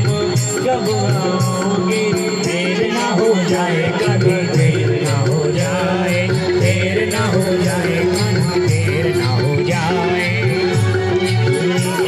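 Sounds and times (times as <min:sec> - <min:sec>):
person chanting and singing: 0:00.0 - 0:12.0
small bells ticking: 0:00.0 - 0:12.0.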